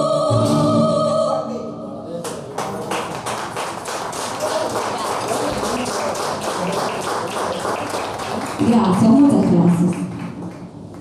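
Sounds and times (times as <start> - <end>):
audience applause: 2.5 - 11.0.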